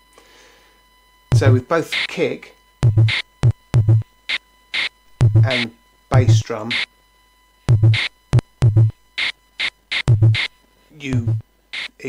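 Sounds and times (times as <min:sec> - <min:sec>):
deep kick drum hits: 0:01.3 - 0:01.6, 0:02.8 - 0:04.0, 0:05.2 - 0:05.6, 0:07.7 - 0:08.9, 0:10.1 - 0:10.5, 0:11.2 - 0:11.4
noisy snare hits: 0:01.3 - 0:02.1, 0:02.8 - 0:05.7, 0:06.3 - 0:06.9, 0:07.7 - 0:10.5, 0:11.2 - 0:11.9.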